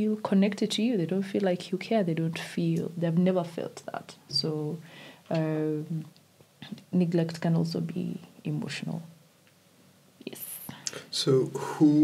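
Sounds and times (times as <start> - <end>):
person saying a word quietly: 10.9 - 12.0.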